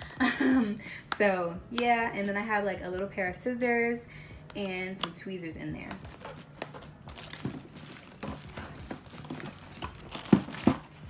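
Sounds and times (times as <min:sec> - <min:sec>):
plastic tubs clicking and knocking: 0:05.9 - 0:10.9.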